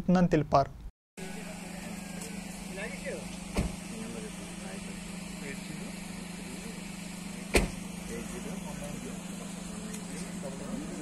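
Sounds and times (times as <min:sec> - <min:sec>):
faint voices: 0:01.2 - 0:11.0
steady low hum: 0:01.2 - 0:11.0
sharp knocks: 0:07.5 - 0:07.8.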